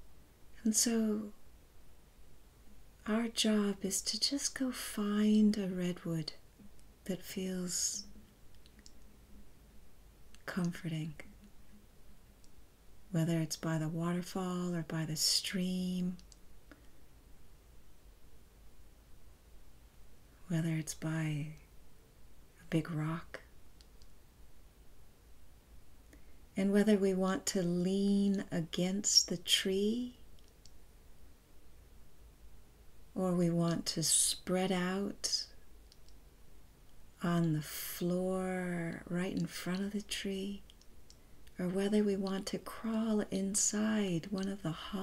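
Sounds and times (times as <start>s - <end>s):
faint low hum: 0.0s - 45.0s
soft clicks: 8.0s - 9.1s, 12.2s - 12.6s, 16.1s - 17.0s, 23.4s - 24.2s, 30.3s - 30.8s, 35.8s - 36.2s, 40.6s - 41.6s
small clicks: 8.5s - 9.1s, 16.2s - 17.0s, 35.8s - 36.2s.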